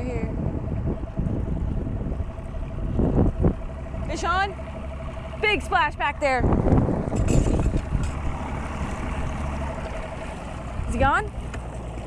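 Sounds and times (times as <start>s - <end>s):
boat motor running: 0.0s - 12.0s
water washing past hull: 0.0s - 12.0s.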